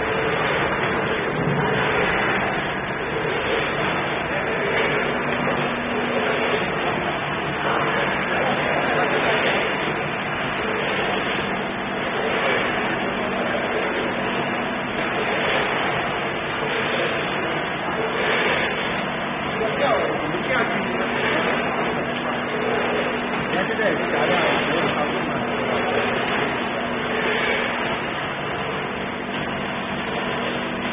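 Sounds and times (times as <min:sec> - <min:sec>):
machinery running with low hum: 0:00.0 - 0:30.9.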